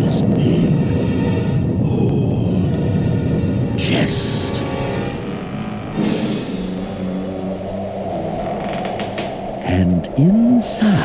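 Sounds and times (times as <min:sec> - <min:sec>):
crackly record hiss: 0:00.0 - 0:11.0
low steady drone: 0:00.0 - 0:11.0.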